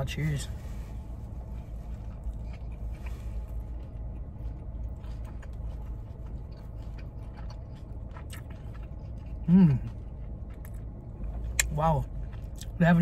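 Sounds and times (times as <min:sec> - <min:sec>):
low background rumble: 0:00.0 - 0:13.0
person chewing wetly: 0:01.1 - 0:13.0.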